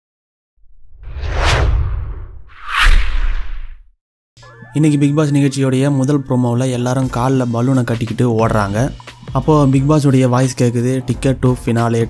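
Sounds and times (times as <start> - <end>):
whoosh sound effect: 0.8 - 3.8.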